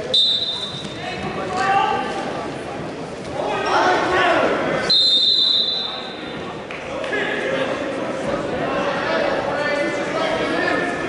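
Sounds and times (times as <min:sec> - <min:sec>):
referee's whistle blast: 0:00.1 - 0:01.0, 0:04.9 - 0:06.2.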